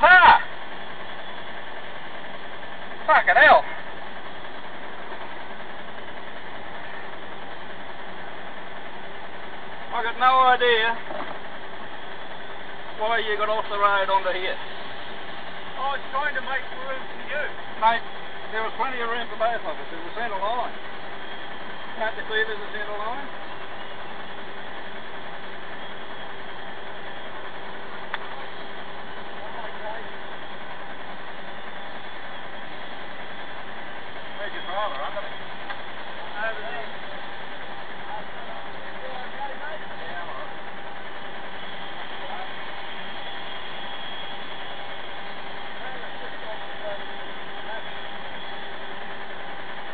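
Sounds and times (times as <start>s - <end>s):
steady mechanical hum: 0.0s - 49.9s
faint voices: 15.6s - 49.9s.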